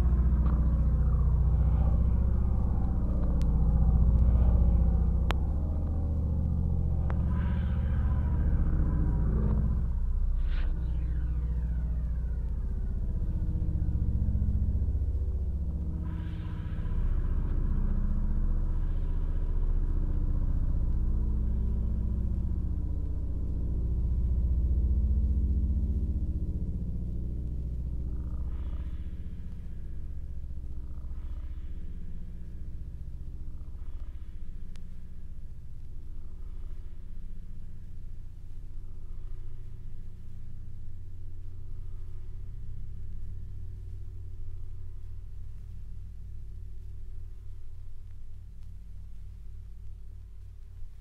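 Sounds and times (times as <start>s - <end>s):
deep rumbling drone: 0.0s - 51.0s
faint high tones: 6.9s - 15.0s.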